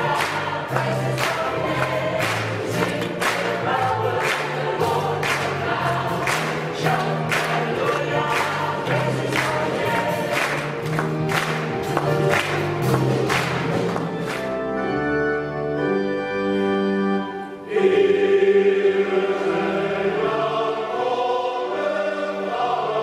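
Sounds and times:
choir singing a sacred song: 0:00.0 - 0:10.7, 0:17.4 - 0:23.0.

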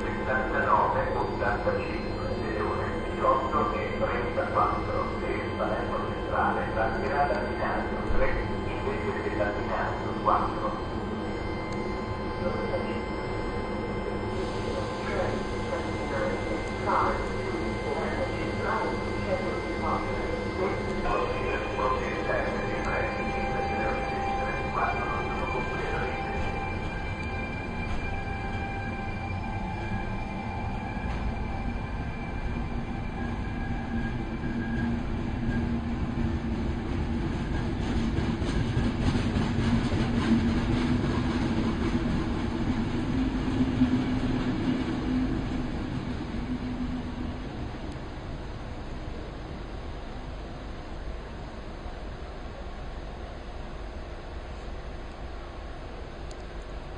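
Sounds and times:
high whining tones: 0:00.0 - 0:38.0
low hum: 0:00.0 - 0:56.9
train rolling rumble: 0:00.0 - 0:56.9.

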